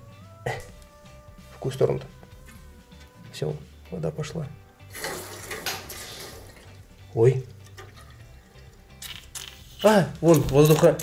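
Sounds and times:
water hissing through pipes: 0:04.9 - 0:06.8.

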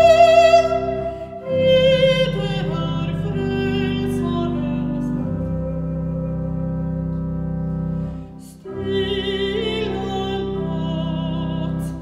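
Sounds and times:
soprano singing with vibrato: 0:00.0 - 0:05.2
church organ chords: 0:00.0 - 0:12.0.

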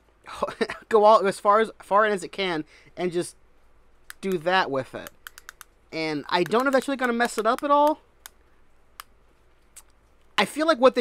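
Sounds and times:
faint plastic clicks: 0:04.0 - 0:05.8.

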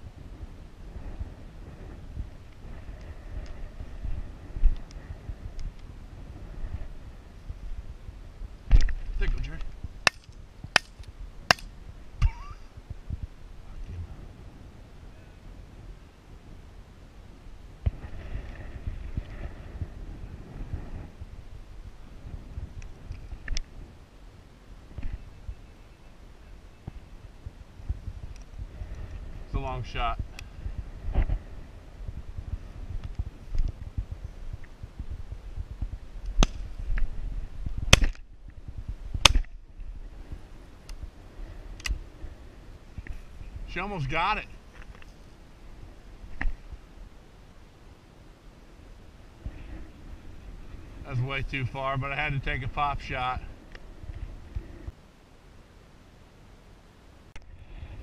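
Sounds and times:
wind buffeting microphone: 0:00.0 - 0:44.7, 0:57.4 - 0:58.0.

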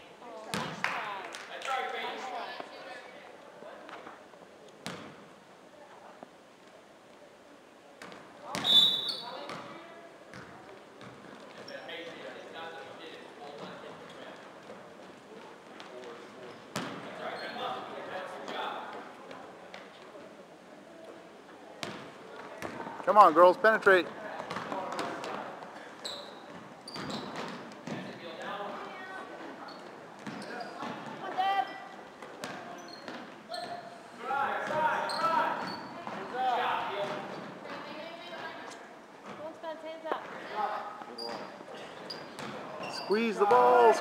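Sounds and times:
referee whistle blast: 0:08.6 - 0:09.3.

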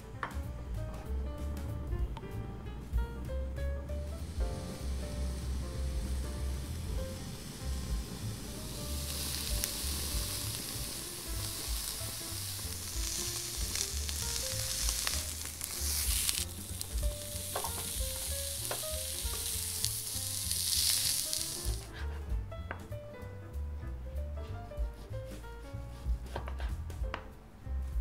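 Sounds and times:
fish searing in a hot pan: 0:04.1 - 0:22.0.

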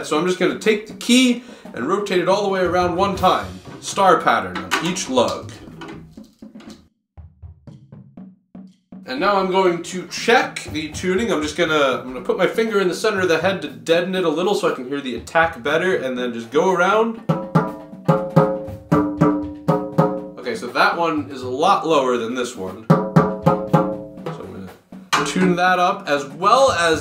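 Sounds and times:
stick tapping drum head: 0:02.6 - 0:06.8, 0:17.2 - 0:20.5, 0:22.8 - 0:25.8.

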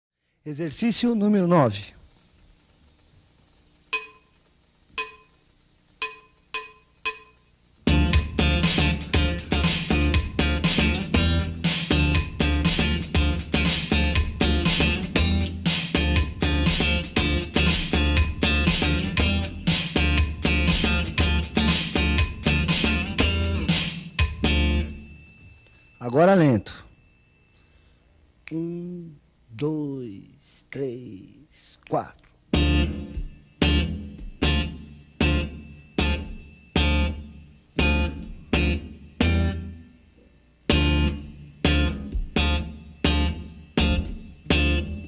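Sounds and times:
slap bass notes: 0:07.9 - 0:24.9, 0:32.5 - 0:37.2.

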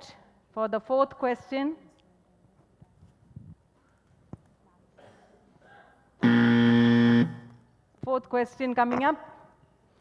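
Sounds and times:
time-up buzzer: 0:06.2 - 0:07.6.

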